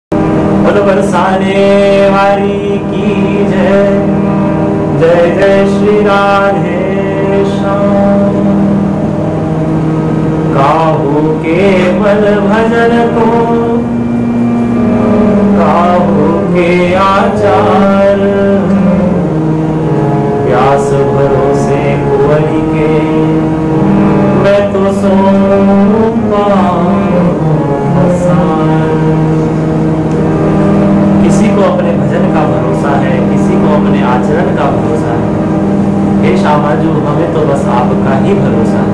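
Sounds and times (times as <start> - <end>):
harmonium chord drone: 0.1 - 38.9
man's voice: 0.6 - 8.7, 10.5 - 14.0, 15.0 - 19.5, 20.1 - 29.7, 31.2 - 38.9.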